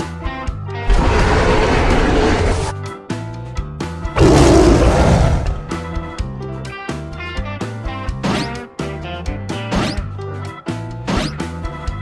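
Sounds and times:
background music: 0.0 - 12.0
dinosaur roar: 0.9 - 2.8, 4.2 - 5.9.

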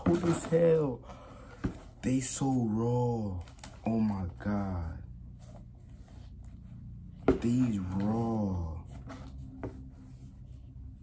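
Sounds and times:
low room hum: 0.0 - 11.0
soft handling clicks and rustles: 3.2 - 4.1.

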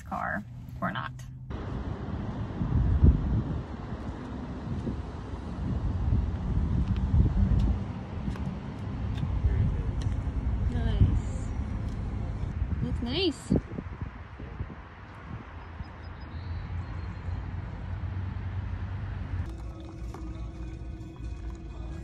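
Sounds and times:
wind buffeting microphone: 1.5 - 18.6.

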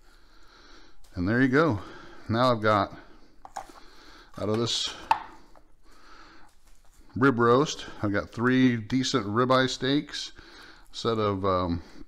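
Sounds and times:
soft handling of raw meat: 5.3 - 9.1.

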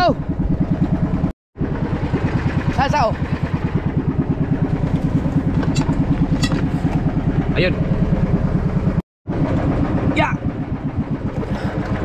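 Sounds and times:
boat engine pulsing: 0.0 - 12.0.

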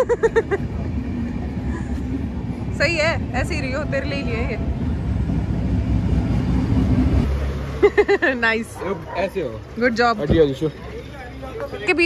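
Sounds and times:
street background rumble: 0.0 - 12.0.

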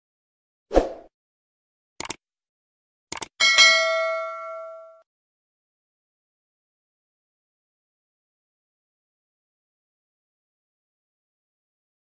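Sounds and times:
bright bell ding: 3.4 - 5.0.

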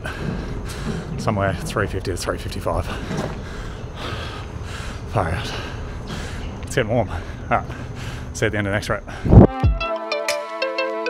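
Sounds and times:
man breathing hard: 0.0 - 1.2, 2.8 - 8.4, 9.0 - 9.5.

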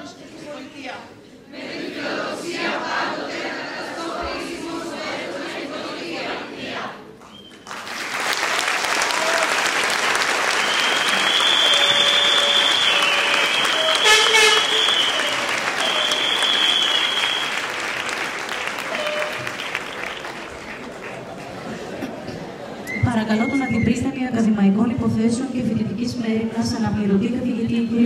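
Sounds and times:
large audience applauding: 7.3 - 22.3.

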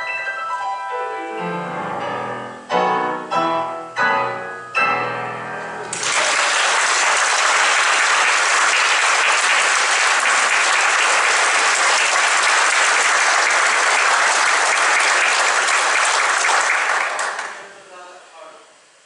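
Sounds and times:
audience applauding: 5.9 - 17.7.

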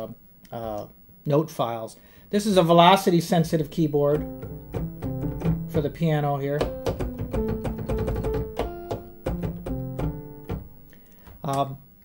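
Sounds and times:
synthesizer piano notes and chords: 4.1 - 11.0.

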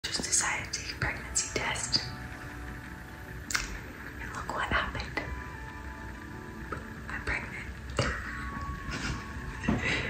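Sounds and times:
woman whispering: 0.2 - 2.1, 4.2 - 5.3, 7.1 - 7.8.

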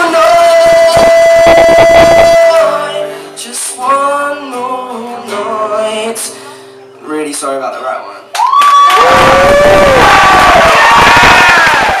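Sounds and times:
audience cheering and clapping: 8.3 - 12.0
long shouts: 8.4 - 12.0.

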